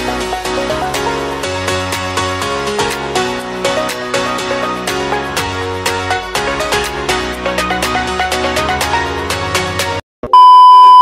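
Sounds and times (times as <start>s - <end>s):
high steady test tone beep: 10.3s - 11.0s.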